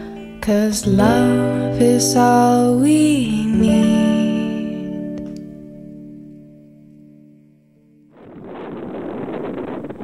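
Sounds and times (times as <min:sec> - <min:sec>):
music: 0:00.0 - 0:10.0
wind buffeting microphone: 0:08.1 - 0:10.0.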